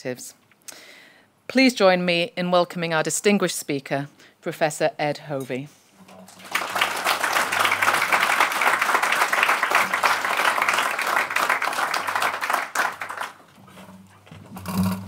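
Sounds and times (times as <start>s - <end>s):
audience applauding: 6.3s - 13.5s.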